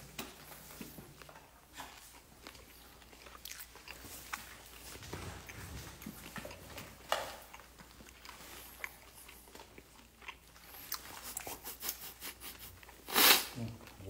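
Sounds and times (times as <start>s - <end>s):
chewing crispy fried chicken: 1.2s - 14.0s.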